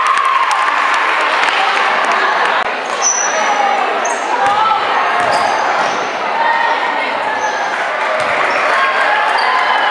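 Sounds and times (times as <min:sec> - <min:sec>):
crowd and player voices echoing: 0:00.0 - 0:09.9
basketball bouncing: 0:04.4 - 0:06.0
sneaker squeaks on hardwood: 0:05.2 - 0:06.2.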